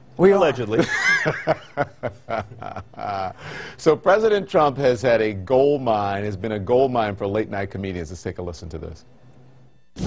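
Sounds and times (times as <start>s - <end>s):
man chuckling: 0.8s - 3.5s.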